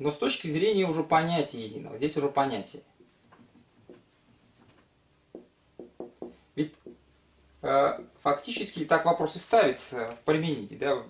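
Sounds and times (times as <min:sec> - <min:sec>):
marker scratching on whiteboard: 0:03.0 - 0:09.2.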